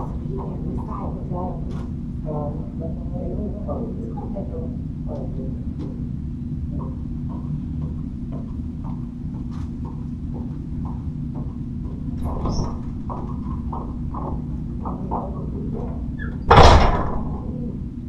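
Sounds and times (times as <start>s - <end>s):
steady low hum: 0.0s - 18.0s
glass door opening: 12.2s - 13.0s
door swinging shut: 12.2s - 13.1s, 16.2s - 17.5s.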